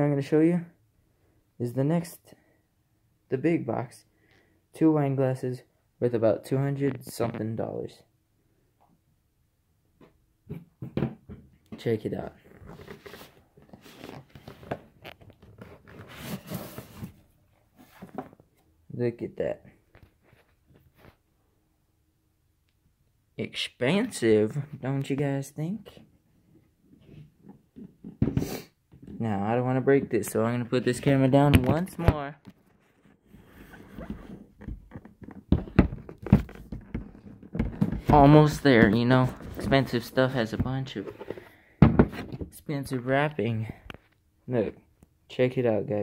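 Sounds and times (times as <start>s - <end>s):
cardboard box being opened: 12.6s - 17.2s.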